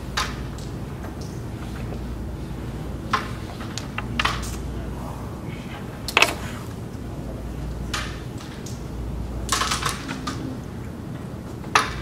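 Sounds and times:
carrom striker clicking on board: 6.1s - 6.5s.

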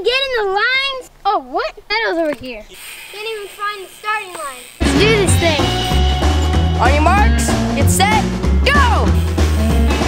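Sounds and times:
loud music with drums and bass: 4.8s - 10.0s.

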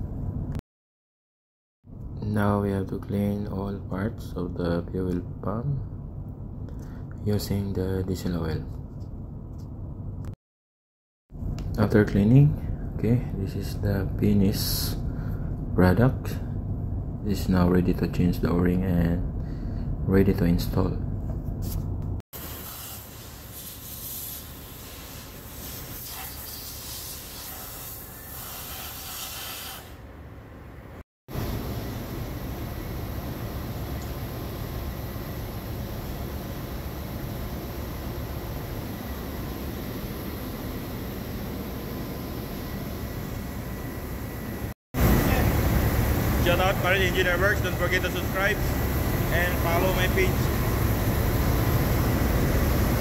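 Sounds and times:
machinery hiss and rumble: 22.4s - 53.0s
man speaking: 45.2s - 45.6s, 46.4s - 50.6s.

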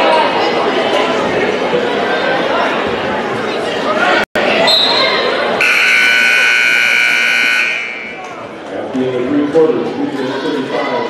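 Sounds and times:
crowd noise: 0.0s - 11.0s
referee's whistle: 4.7s - 8.2s
scoreboard buzzer: 5.6s - 8.2s.

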